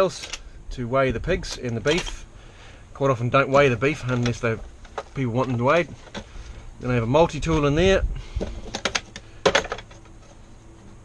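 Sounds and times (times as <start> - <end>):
small tools clicking and clattering: 0.0 - 0.5, 1.4 - 2.3, 2.9 - 6.6, 8.4 - 10.3.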